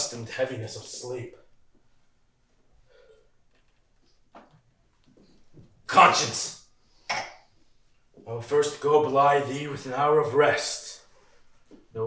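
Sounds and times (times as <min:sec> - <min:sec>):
man's voice: 0:00.0 - 0:01.4, 0:05.9 - 0:06.6, 0:08.3 - 0:11.0.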